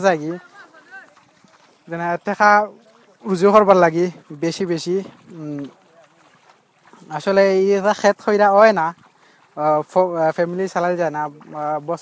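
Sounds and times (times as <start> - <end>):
person talking: 0.0 - 6.1, 9.6 - 12.0.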